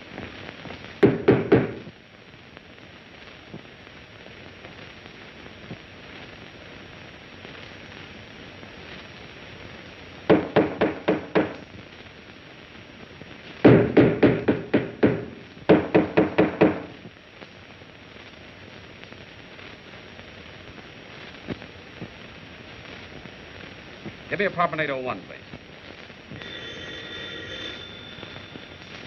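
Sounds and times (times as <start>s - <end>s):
rapid banging on a wall: 1.0s - 1.8s, 13.6s - 16.9s.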